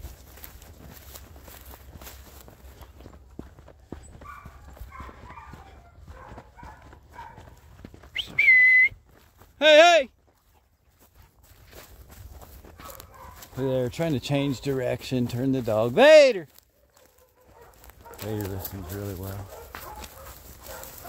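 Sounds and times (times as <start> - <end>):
footsteps through field cover: 0.0 - 21.0
whistle blast: 8.2 - 9.0.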